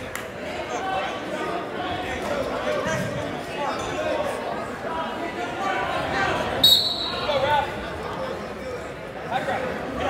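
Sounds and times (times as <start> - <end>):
spectators' voices echoing: 0.0 - 10.0.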